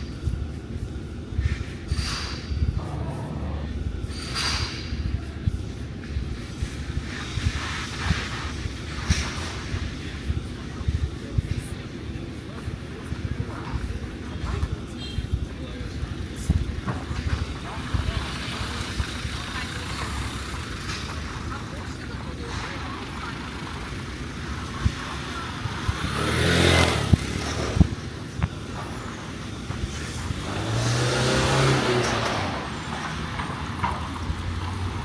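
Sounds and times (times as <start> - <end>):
voices of passers-by: 0.0 - 35.0
motor vehicle engine passing: 2.7 - 4.0, 25.6 - 28.0, 29.9 - 35.0
scooter engine passing: 24.5 - 28.0, 30.2 - 35.0.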